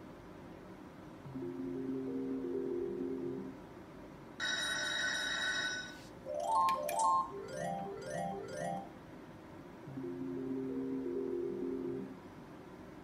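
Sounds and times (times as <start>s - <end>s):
slot machine chiming chord: 6.3s - 8.9s.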